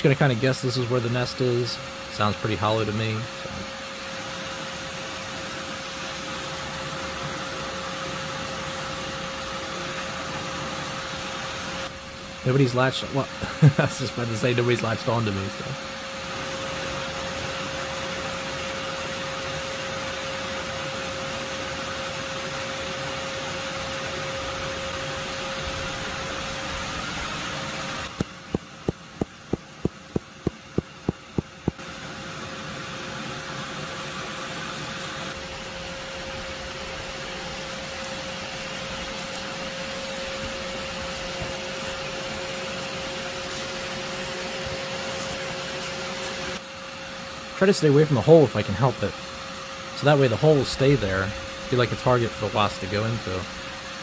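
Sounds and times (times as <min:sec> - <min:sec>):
vacuum motor whine: 0:00.9 - 0:12.5, 0:13.1 - 0:47.5.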